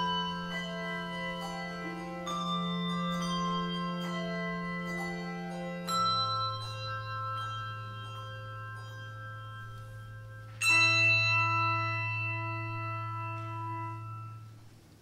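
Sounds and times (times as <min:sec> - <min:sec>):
handbells ringing: 0:00.0 - 0:14.7
loud handbell chord: 0:00.0 - 0:14.7
held low bell note: 0:00.0 - 0:14.8.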